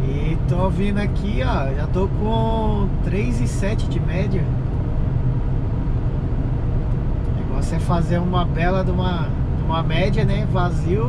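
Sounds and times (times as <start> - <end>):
road noise hiss: 0.0 - 11.0
truck engine drone: 0.0 - 11.0.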